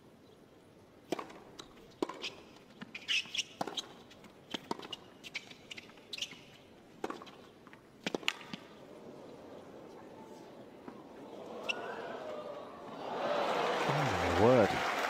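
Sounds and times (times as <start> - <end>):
shoes squeaking on court: 1.6 - 12.2
racket hitting tennis ball: 7.0 - 7.4, 8.0 - 9.4.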